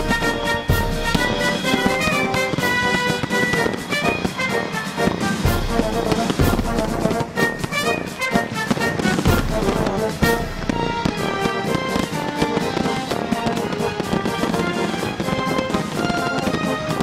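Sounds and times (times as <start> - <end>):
fireworks bursting: 0.0 - 17.0
music with held notes: 0.0 - 17.0.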